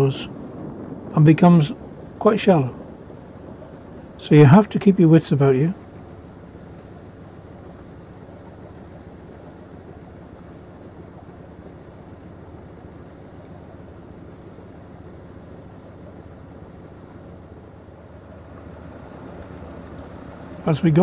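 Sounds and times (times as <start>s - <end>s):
boat inboard engine humming: 17.2s - 21.0s.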